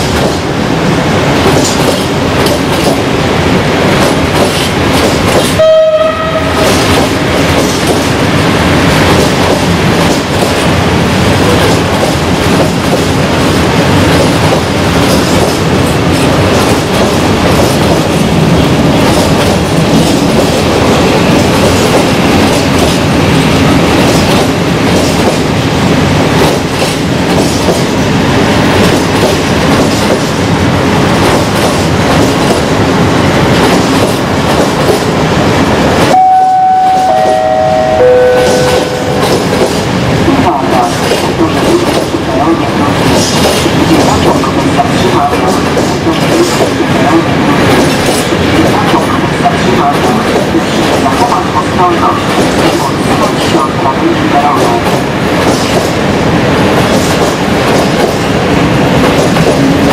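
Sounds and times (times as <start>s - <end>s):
train wheels clattering and rumbling: 0.0s - 5.6s, 6.3s - 36.2s, 38.4s - 59.9s.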